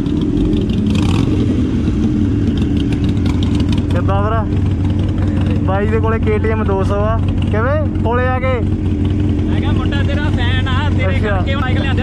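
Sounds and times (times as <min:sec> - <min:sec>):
motorcycle engines idling: 0:00.0 - 0:12.0
men talking: 0:03.9 - 0:12.0.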